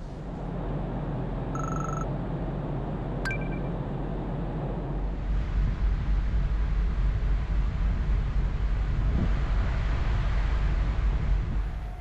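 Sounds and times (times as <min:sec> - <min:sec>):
ferry engines rumbling: 0:00.0 - 0:12.0
high trilling beep: 0:03.3 - 0:03.7.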